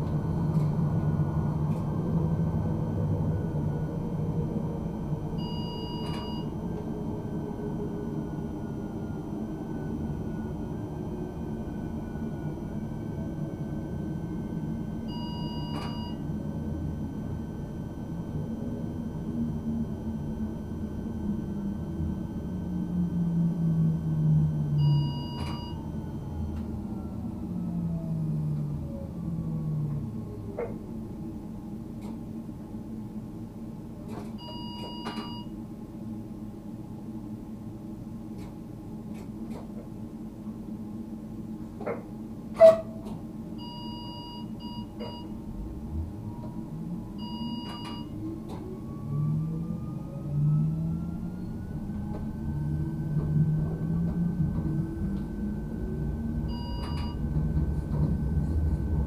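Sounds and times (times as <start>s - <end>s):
train wheels rumbling on rails: 51.3s - 59.0s.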